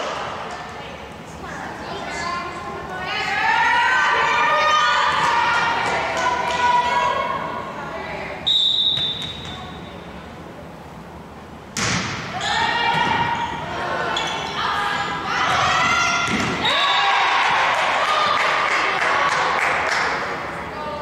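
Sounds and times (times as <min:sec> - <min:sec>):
referee whistle blast: 0:08.5 - 0:09.6
players shouting: 0:12.3 - 0:19.8.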